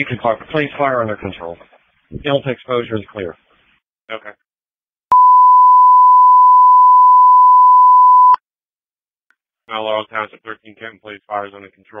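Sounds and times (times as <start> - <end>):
radio alert beep: 5.1 - 8.4.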